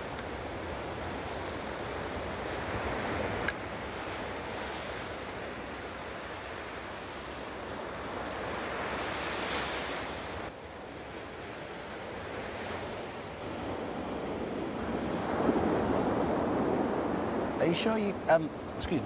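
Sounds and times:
ocean surf washing onto beach: 0:00.0 - 0:19.0.

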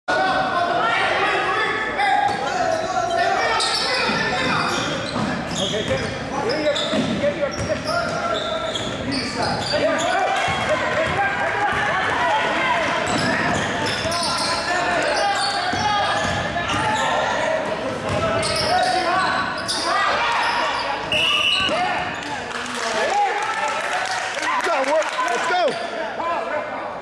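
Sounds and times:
people talking and calling out: 0:00.1 - 0:27.0
sneakers squeaking: 0:02.2 - 0:12.0, 0:12.8 - 0:22.3
basketball bouncing: 0:10.4 - 0:12.2.

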